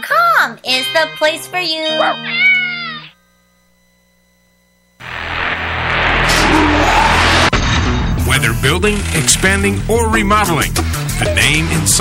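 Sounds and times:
loud engine: 5.0s - 10.1s.

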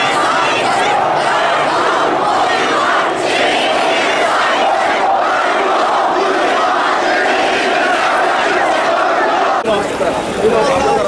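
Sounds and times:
crowd chanting slogans: 0.0s - 9.7s.

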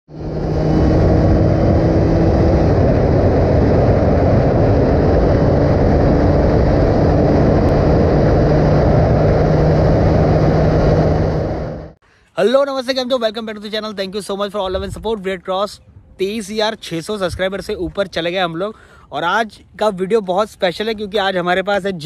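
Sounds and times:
motorcycle engine at speed: 0.1s - 12.0s
wind noise: 0.1s - 12.0s, 14.5s - 18.4s.

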